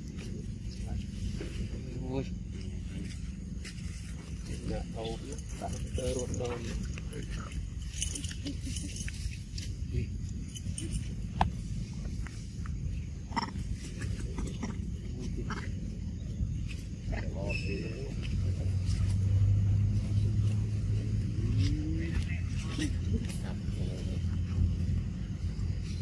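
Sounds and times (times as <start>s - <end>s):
low steady engine hum: 0.0s - 26.0s.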